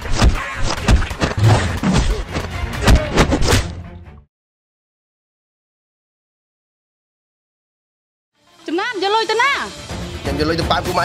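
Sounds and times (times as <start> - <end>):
punch and hit sound effects: 0.0 - 3.8
action film soundtrack music: 0.2 - 4.3, 8.4 - 11.0.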